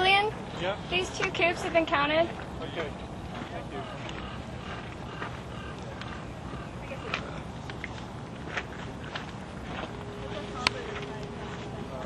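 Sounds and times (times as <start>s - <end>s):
faint distant voices: 0.0s - 12.0s
thin steady hum: 0.0s - 12.0s.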